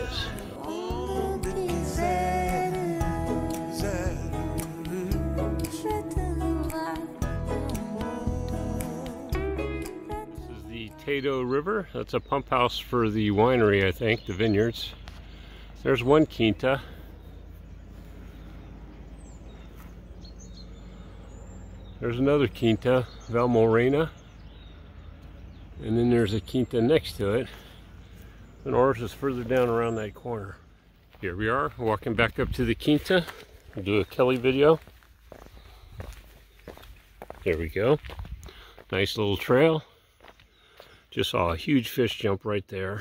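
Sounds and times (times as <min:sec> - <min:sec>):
footsteps on stone path: 0:14.8 - 0:15.8, 0:16.8 - 0:21.0, 0:30.9 - 0:41.0.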